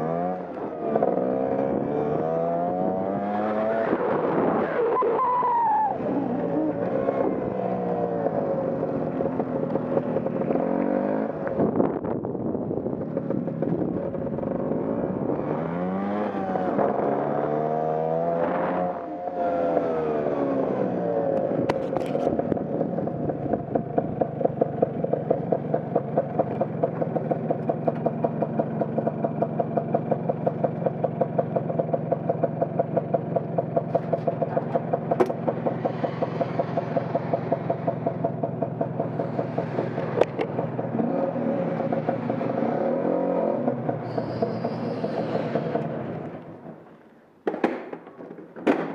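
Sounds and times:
motor scooter engine idling: 0:21.8 - 0:41.0.

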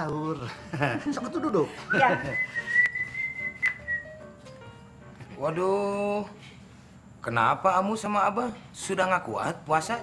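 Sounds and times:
high whistled note: 0:01.8 - 0:04.3.

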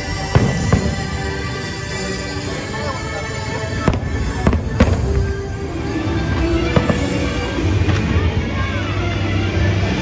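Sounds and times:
fireworks bangs: 0:00.0 - 0:02.1, 0:03.5 - 0:08.3
music: 0:00.0 - 0:10.0.

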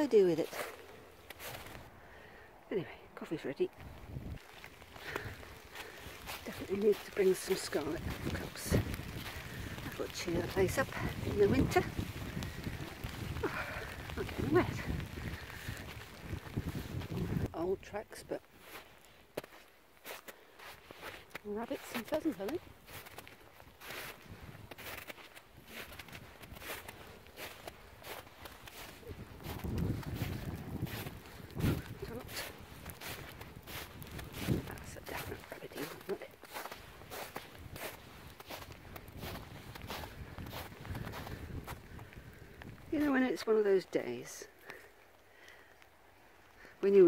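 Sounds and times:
footsteps in snow: 0:00.0 - 0:01.9, 0:03.7 - 0:17.5, 0:18.3 - 0:44.9.

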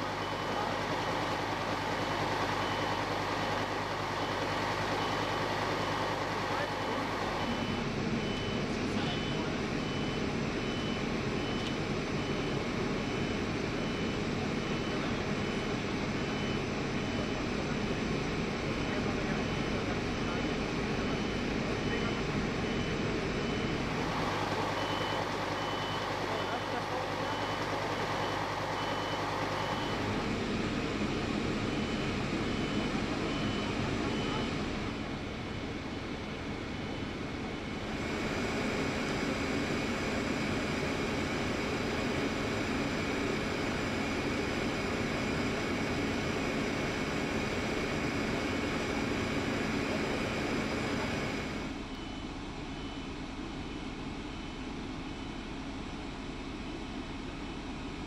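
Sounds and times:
heavy truck engines running: 0:00.0 - 0:58.0
high-pitched warning beeper: 0:31.7 - 0:34.8.

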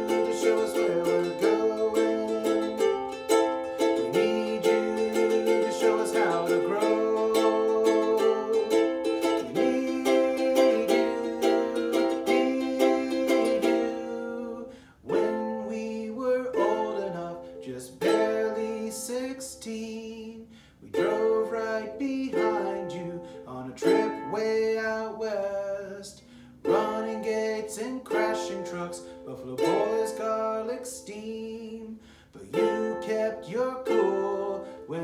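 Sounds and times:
ukulele strumming chords: 0:00.0 - 0:35.0.

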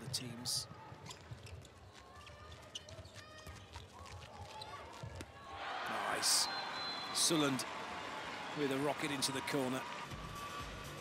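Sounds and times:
shoes squeaking on court floor: 0:00.9 - 0:05.3.

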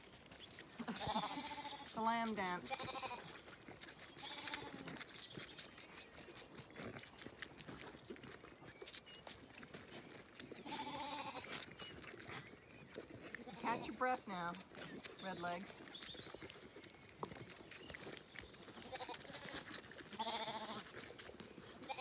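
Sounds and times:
lambs suckling at bottles: 0:00.0 - 0:22.0
lambs bleating: 0:00.8 - 0:03.4, 0:04.1 - 0:05.0, 0:10.6 - 0:11.6, 0:13.4 - 0:14.6, 0:18.7 - 0:21.0, 0:21.8 - 0:22.0.

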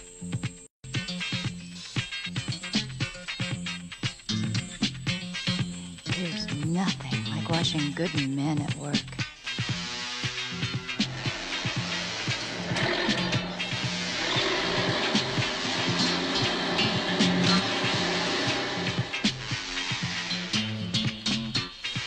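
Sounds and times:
upbeat background music: 0:00.9 - 0:22.0
steady drum beat: 0:09.6 - 0:22.0
bass line: 0:09.7 - 0:21.7.

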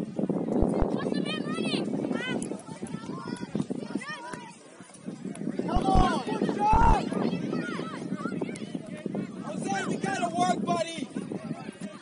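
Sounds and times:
players and spectators shouting: 0:05.7 - 0:07.8.

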